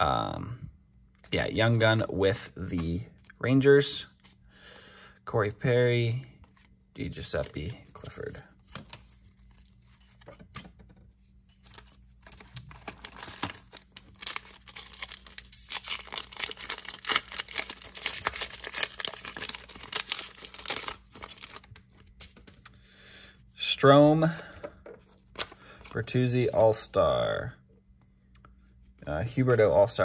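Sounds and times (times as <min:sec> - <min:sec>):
wrapper torn and crinkled: 0:11.7 - 0:21.8.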